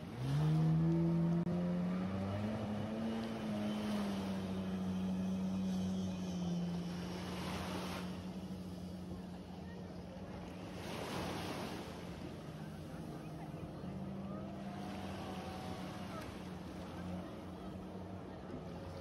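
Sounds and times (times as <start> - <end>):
jet ski engine running: 0.0 - 19.0.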